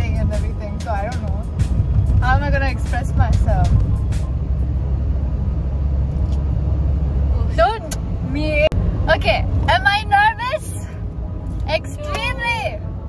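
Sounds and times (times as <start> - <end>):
woman's voice: 0.0 - 1.4, 2.2 - 3.7, 7.4 - 11.0, 11.7 - 12.8
car cabin rumble: 0.0 - 12.8.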